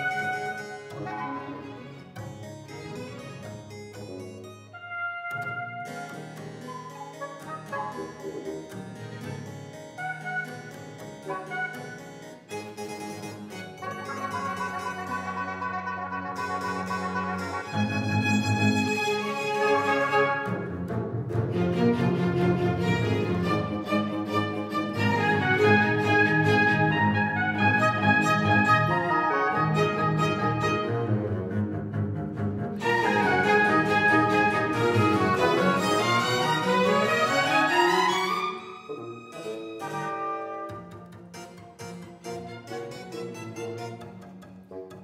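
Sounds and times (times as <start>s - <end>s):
bowed strings holding long notes: 0.0s - 45.0s
deeper string notes: 16.1s - 45.0s.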